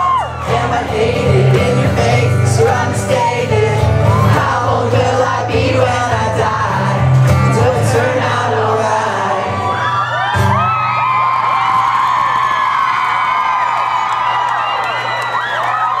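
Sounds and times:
audience screaming and cheering: 0.0 - 5.5, 8.3 - 16.0
live acoustic song: 0.0 - 14.4.

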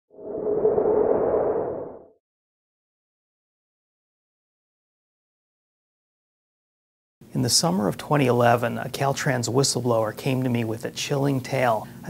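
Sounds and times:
synthesized whoosh with hum: 0.1 - 2.2.

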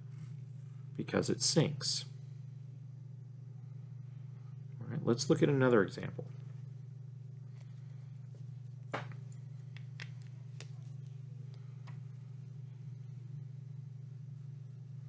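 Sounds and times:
low hum: 0.0 - 15.0.

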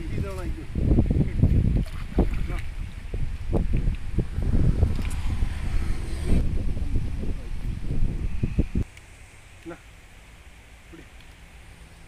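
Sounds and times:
wind rumbling on microphone: 0.0 - 8.9
stream water splashing: 1.4 - 5.4.

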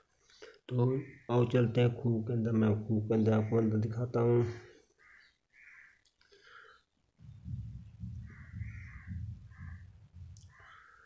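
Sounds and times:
crow cawing: 5.0 - 6.0, 7.4 - 11.0
low rumble on microphone: 7.2 - 10.8.

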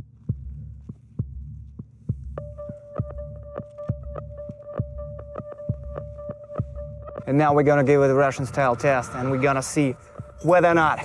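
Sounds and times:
throbbing bass pulse: 0.0 - 10.5.

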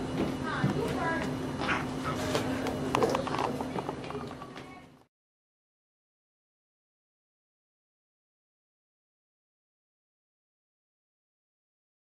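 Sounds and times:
steady low hum: 0.0 - 5.1
people talking: 0.4 - 5.1.

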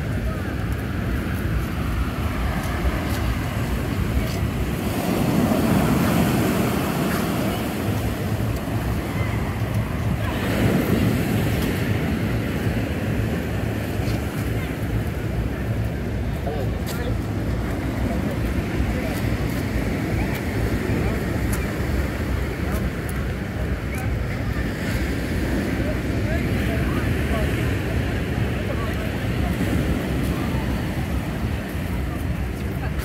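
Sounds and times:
indistinct chatter: 0.0 - 33.0.

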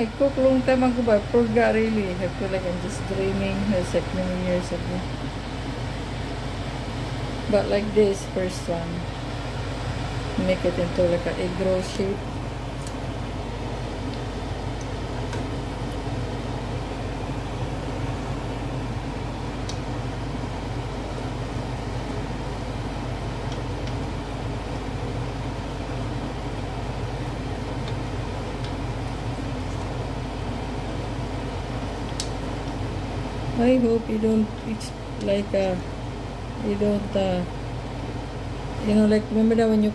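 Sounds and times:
low hum: 0.0 - 39.9.

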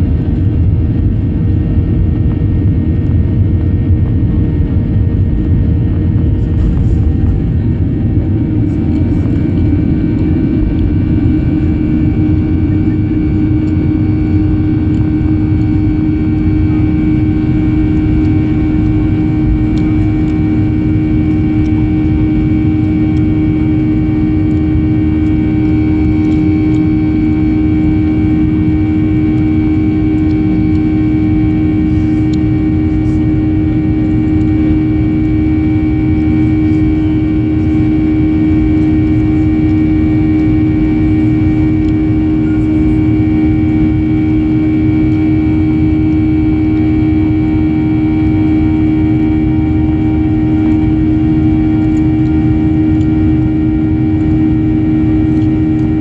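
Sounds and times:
high whine: 0.0 - 56.0
jet engine rumble in cabin: 0.0 - 56.0
steady hum: 0.0 - 56.0.

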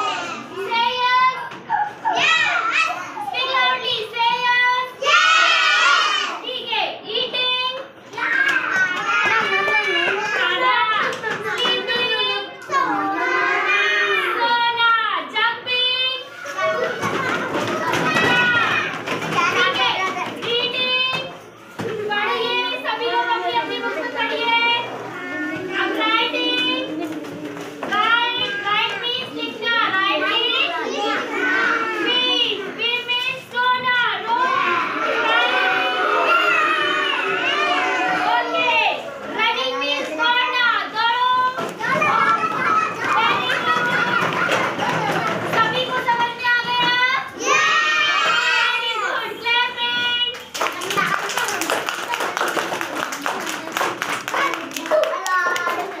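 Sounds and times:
children talking and calling out: 0.0 - 56.0.

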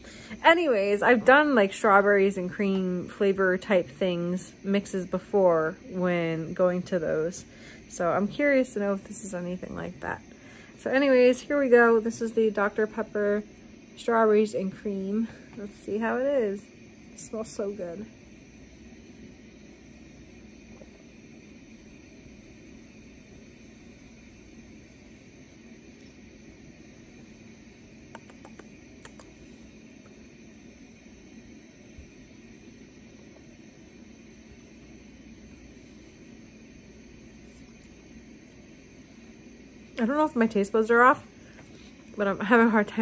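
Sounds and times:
steady low hum: 0.0 - 43.0
faint clicks: 28.1 - 29.3.

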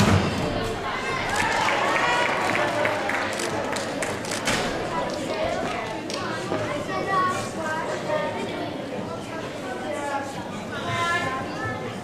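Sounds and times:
indistinct chatter in a hall: 0.0 - 12.0.

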